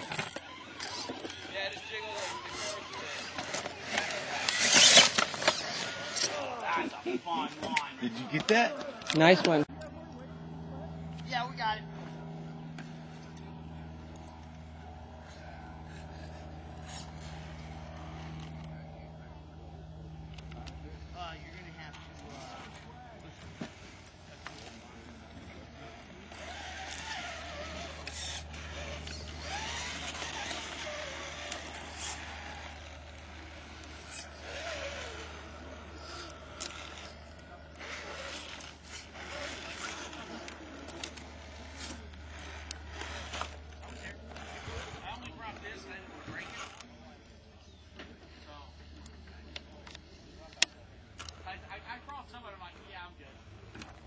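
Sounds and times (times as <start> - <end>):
people talking: 1.1 - 12.7, 18.6 - 54.0.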